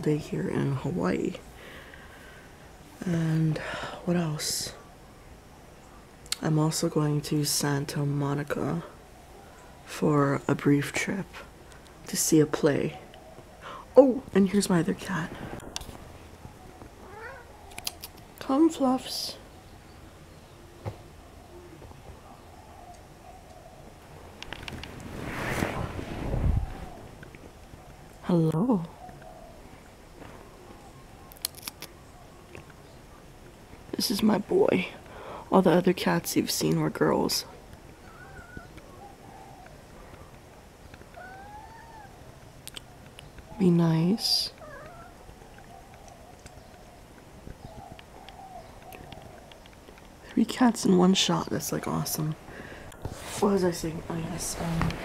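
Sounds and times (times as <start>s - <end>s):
cat meowing softly: 17.0s - 17.6s, 38.0s - 38.7s, 41.1s - 42.2s, 44.6s - 45.2s.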